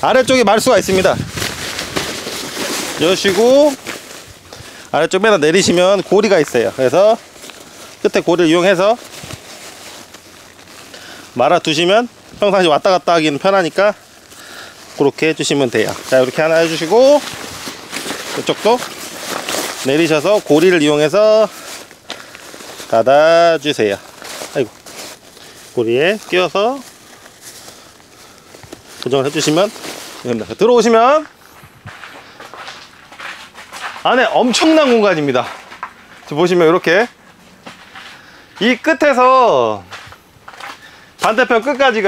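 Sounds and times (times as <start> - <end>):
tent fabric rustling: 0.0 - 42.0.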